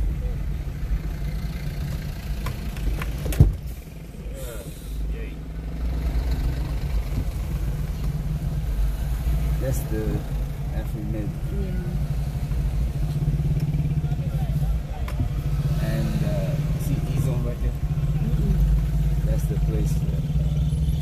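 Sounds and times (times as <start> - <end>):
car engine and road drone: 0.0 - 21.0.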